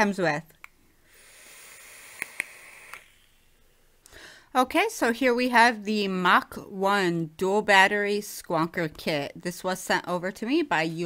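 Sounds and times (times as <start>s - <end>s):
vape draw hiss: 1.0s - 3.7s
small clicks: 2.2s - 3.4s.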